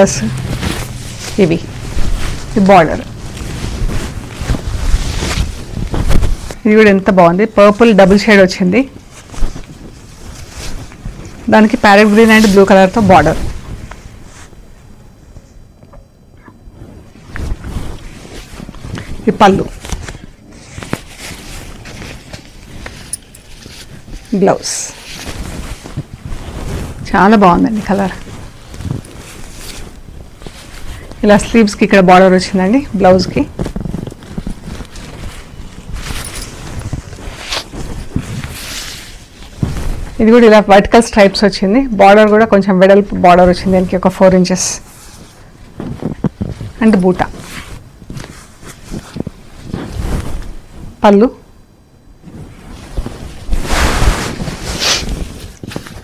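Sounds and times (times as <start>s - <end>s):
low background rumble: 0.0s - 15.3s
fabric rustling and sliding: 0.0s - 15.4s, 16.4s - 56.0s.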